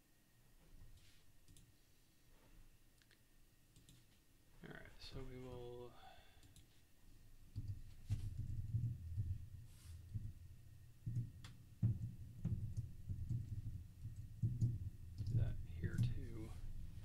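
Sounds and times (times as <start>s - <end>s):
keyboard typing: 11.1s - 16.3s.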